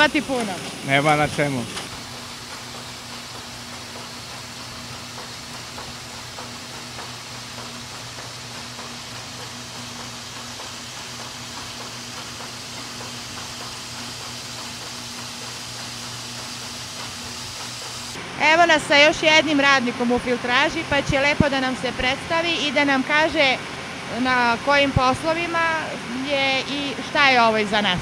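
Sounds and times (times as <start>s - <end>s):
machinery hiss: 0.0s - 27.8s
electric motors humming: 0.0s - 28.0s.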